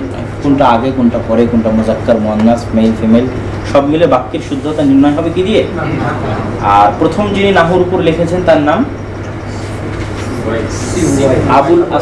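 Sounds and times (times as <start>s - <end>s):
man speaking: 0.0s - 9.0s, 10.3s - 12.0s
low room hum: 0.0s - 12.0s.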